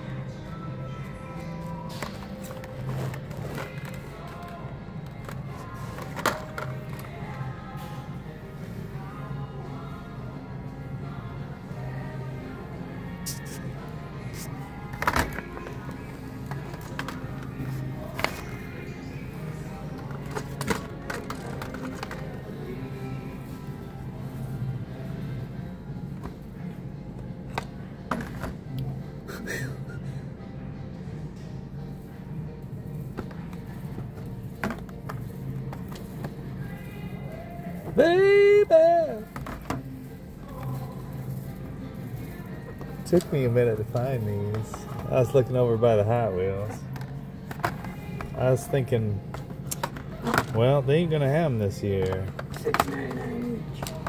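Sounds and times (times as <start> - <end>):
background music: 0.0 - 54.0.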